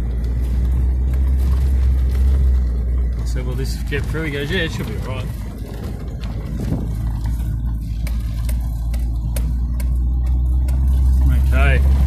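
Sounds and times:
car engine and road drone: 0:00.0 - 0:12.0
knocks and rattles from bumps: 0:00.0 - 0:12.0.

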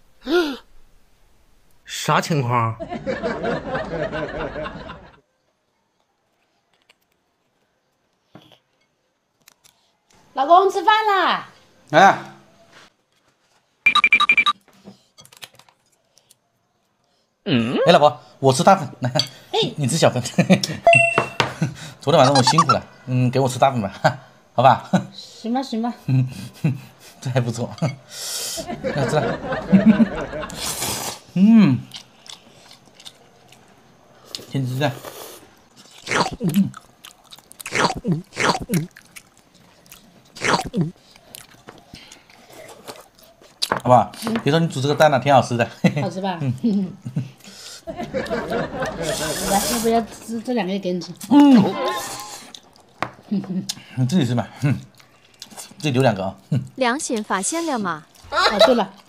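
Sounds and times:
soft chewing: 0:05.8 - 0:10.2, 0:15.2 - 0:17.3, 0:31.8 - 0:44.3, 0:51.1 - 0:53.9, 0:54.6 - 0:55.9, 0:58.0 - 0:59.0.

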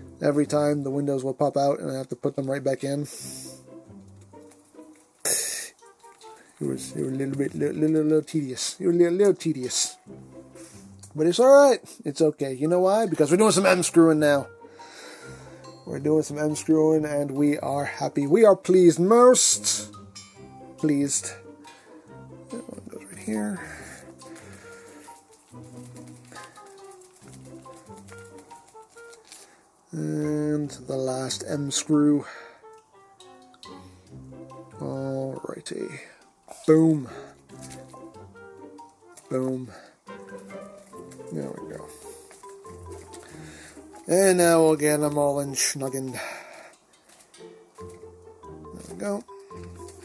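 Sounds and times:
soft held musical notes: 0:00.0 - 0:50.0
loud breathy hiss: 0:03.1 - 0:03.8, 0:05.2 - 0:05.8, 0:10.5 - 0:11.0, 0:14.7 - 0:15.7
soft melody of held notes: 0:13.4 - 0:18.4, 0:32.7 - 0:50.0.

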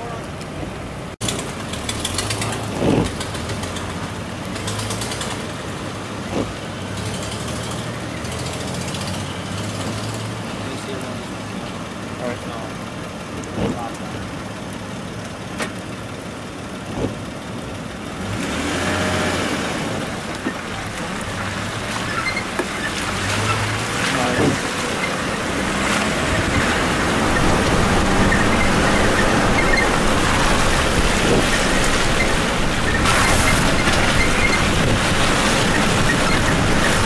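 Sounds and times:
tyres on gravel: 0:00.0 - 0:14.4, 0:15.0 - 0:37.0
car engine drone: 0:00.0 - 0:37.0.

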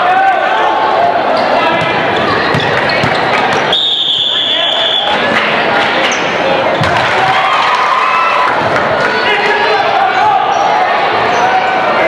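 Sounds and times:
basketball game noise: 0:00.0 - 0:12.0
crowd chatter: 0:00.0 - 0:12.0
referee's whistle blast: 0:03.7 - 0:05.2.

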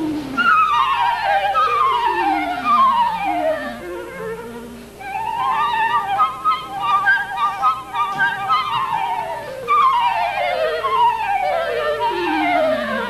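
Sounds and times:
flute and clarinet duet: 0:00.0 - 0:13.0.

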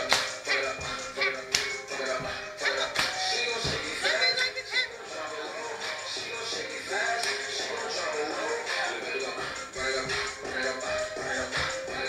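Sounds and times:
hip-hop music through laptop speakers: 0:00.0 - 0:12.0.

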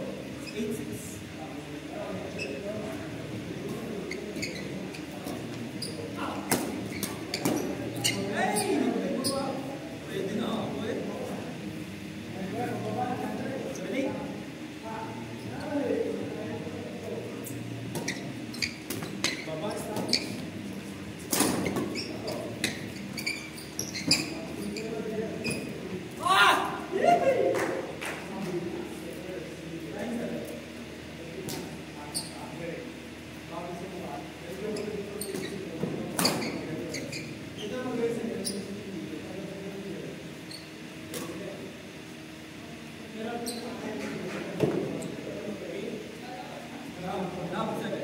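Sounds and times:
players' voices in echoing hall: 0:00.0 - 0:48.0
shoes squeaking on court floor: 0:00.4 - 0:00.8, 0:02.2 - 0:09.7, 0:17.3 - 0:26.0, 0:31.5 - 0:32.6, 0:34.5 - 0:37.8, 0:38.4 - 0:38.7, 0:40.4 - 0:41.3, 0:43.4 - 0:45.2.

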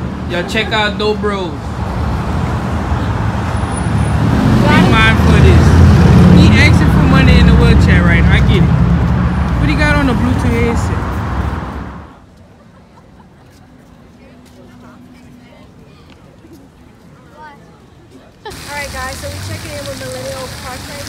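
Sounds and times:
city street traffic rumbling: 0:00.0 - 0:21.0
people talking: 0:04.6 - 0:08.7, 0:13.4 - 0:21.0.

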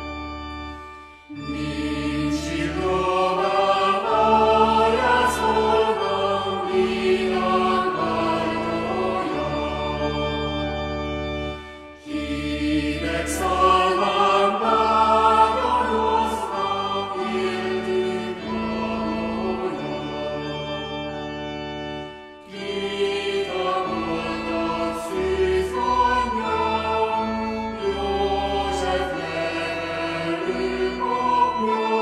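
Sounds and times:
choir singing slow song: 0:01.3 - 0:11.2, 0:12.0 - 0:21.1, 0:22.4 - 0:32.0.

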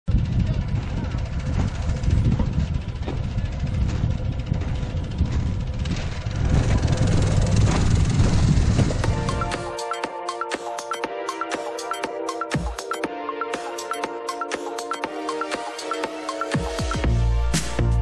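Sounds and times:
wind buffeting microphone: 0:00.1 - 0:09.5.

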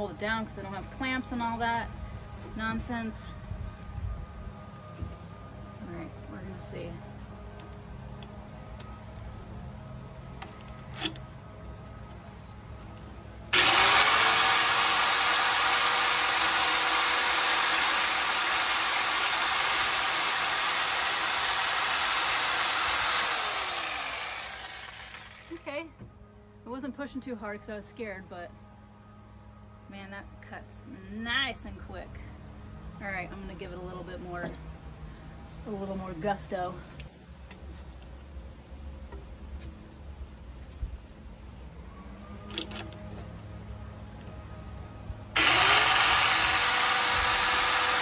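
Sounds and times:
saw cutting through wood: 0:13.5 - 0:25.6, 0:45.4 - 0:48.0
saw motor whining: 0:13.5 - 0:25.6, 0:45.4 - 0:48.0.

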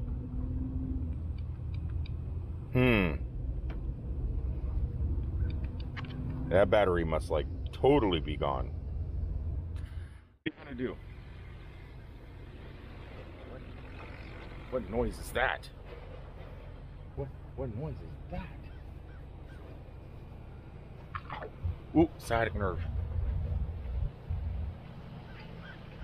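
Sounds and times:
distant engine drone: 0:00.0 - 0:26.0.

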